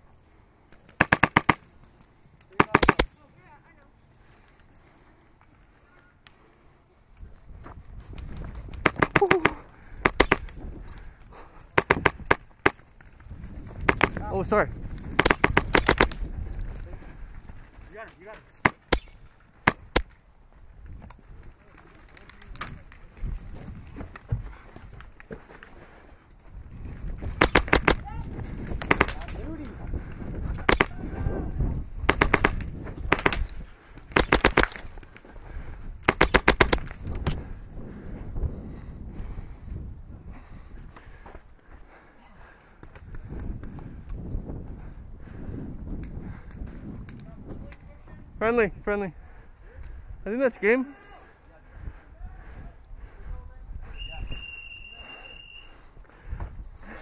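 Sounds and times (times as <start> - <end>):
airsoft rifle firing bursts: 1.0 - 1.6, 32.0 - 33.4, 34.2 - 34.8, 36.1 - 36.9.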